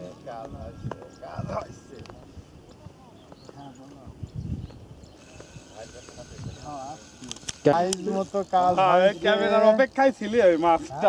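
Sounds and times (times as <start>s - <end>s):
people chattering: 0.0s - 4.2s
sharp clicks: 7.2s - 8.1s.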